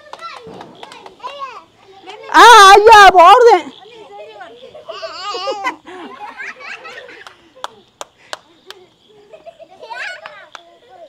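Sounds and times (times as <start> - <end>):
sparklers crackling: 0.0 - 1.6
children calling out: 0.0 - 11.0.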